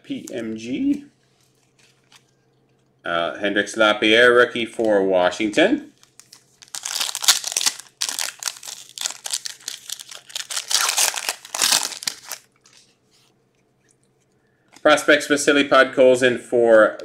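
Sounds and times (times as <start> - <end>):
foil wrapper tearing and crinkling: 6.0 - 12.8.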